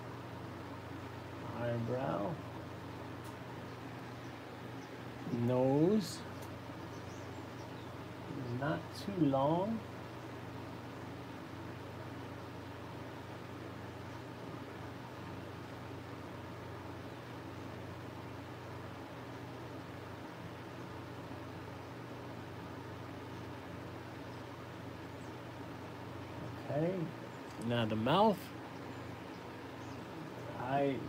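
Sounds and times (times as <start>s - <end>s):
electric fan rushing: 0.0s - 31.0s.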